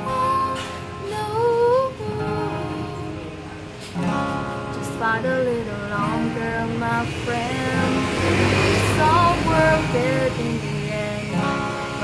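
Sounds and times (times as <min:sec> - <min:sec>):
woman singing: 0:00.0 - 0:03.6, 0:04.7 - 0:12.0
acoustic guitar strumming: 0:00.0 - 0:12.0.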